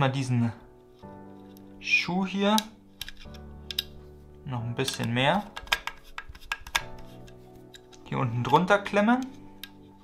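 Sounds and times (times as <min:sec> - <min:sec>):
background music: 0:00.0 - 0:10.0
screwdriver clicking on screw: 0:02.6 - 0:03.9, 0:04.9 - 0:08.6.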